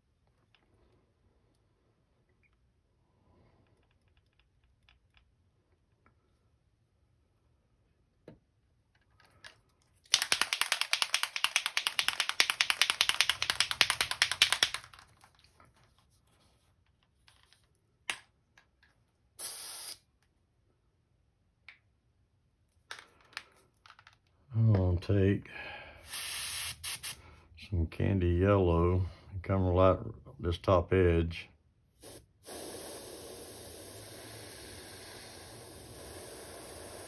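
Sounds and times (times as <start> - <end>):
paint bottle rattling: 9.0 - 17.8
airbrush spraying hiss: 19.4 - 20.0, 26.0 - 27.2, 32.0 - 37.0.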